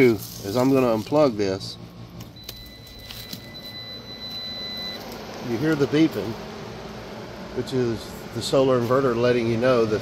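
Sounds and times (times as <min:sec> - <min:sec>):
high-pitched buzzer beep: 0:02.4 - 0:05.1.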